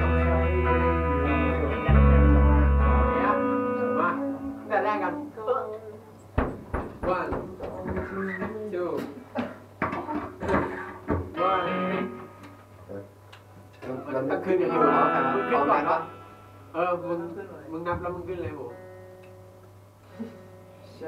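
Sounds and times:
bass guitar notes: 0:00.0 - 0:04.8, 0:14.7 - 0:16.8
electric guitar notes: 0:00.0 - 0:05.1, 0:11.3 - 0:12.6, 0:14.6 - 0:17.3, 0:18.1 - 0:21.0
people talking: 0:00.0 - 0:06.1, 0:13.8 - 0:16.2, 0:16.8 - 0:18.8
sharp knocks and clicks: 0:06.4 - 0:08.6.

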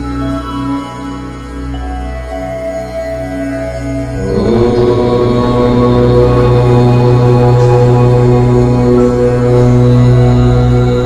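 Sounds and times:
deep chanted om: 0:00.0 - 0:11.0
soft background music: 0:00.0 - 0:11.0.

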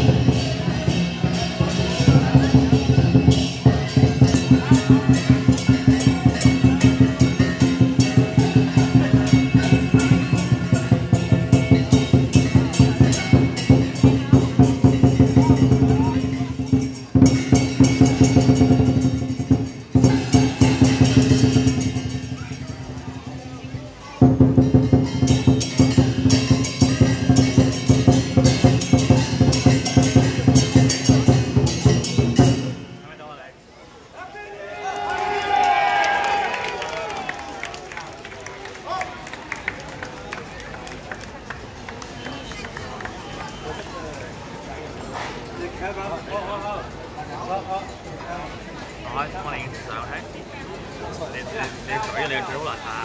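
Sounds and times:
clashing cymbals: 0:00.0 - 0:23.6, 0:24.2 - 0:33.0
drum beaten in fast rhythm: 0:00.0 - 0:33.0
crowd talking: 0:00.0 - 0:53.0.

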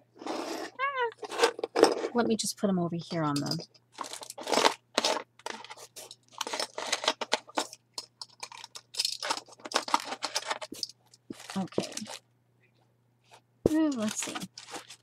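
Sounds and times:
paper packaging rustling: 0:03.9 - 0:12.2, 0:13.7 - 0:15.0.

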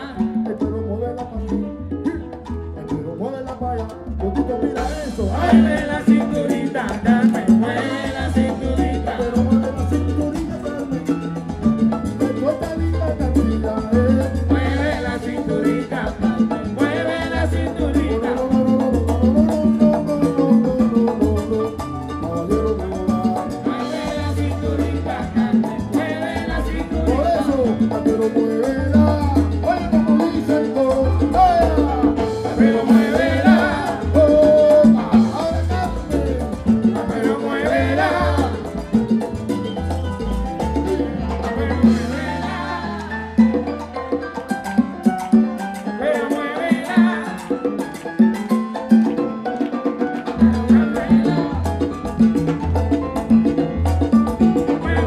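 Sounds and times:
live salsa band playing: 0:00.0 - 0:55.0
percussion groove: 0:00.0 - 0:55.0.

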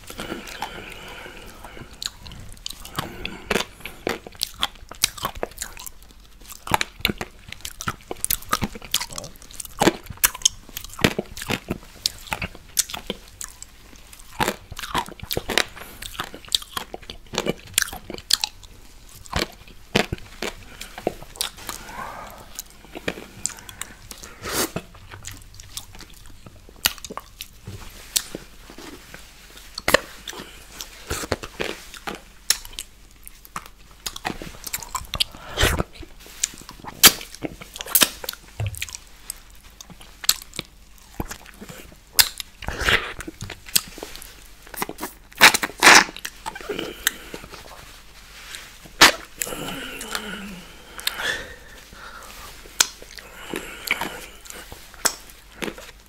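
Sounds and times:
lip smacks: 0:52.7 - 0:55.9
tongue and lip clicks: 0:53.9 - 0:55.9.

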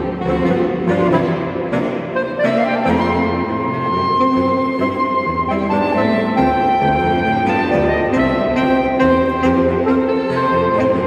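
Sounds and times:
saxophone quartet playing: 0:00.0 - 0:11.0.

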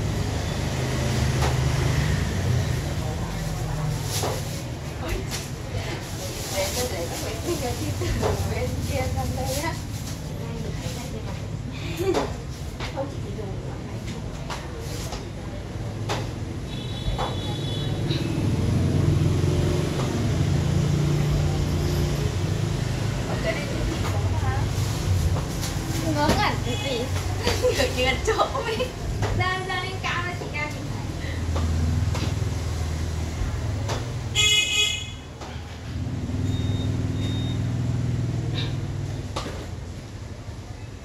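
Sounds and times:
traffic rumble: 0:00.0 - 0:41.0
passing vehicle engine rumble: 0:17.9 - 0:28.1
vehicle horn toot: 0:34.4 - 0:35.2.

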